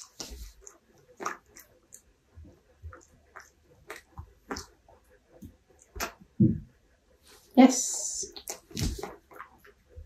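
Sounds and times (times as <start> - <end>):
dog chewing a treat: 0.0 - 7.0, 8.3 - 10.0.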